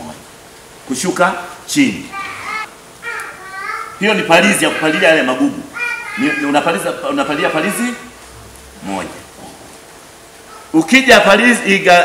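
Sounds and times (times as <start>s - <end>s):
high-pitched voice speaking: 2.1s - 5.1s.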